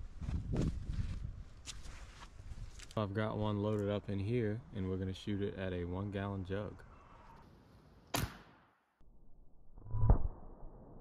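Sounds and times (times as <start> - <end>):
airgun firing: 8.1 - 8.7.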